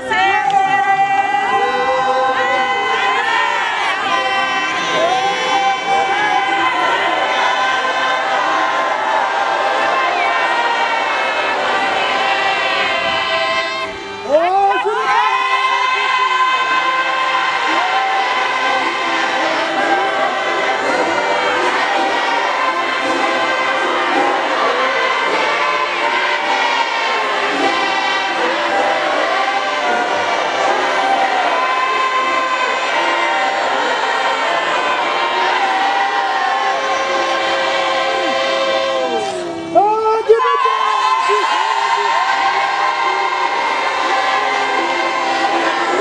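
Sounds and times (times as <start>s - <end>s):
congregation singing a hymn: 0.0s - 46.0s.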